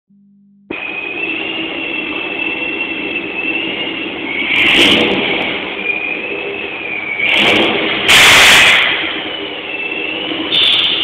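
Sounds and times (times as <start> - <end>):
car engine drone with whine: 0.1 - 11.0.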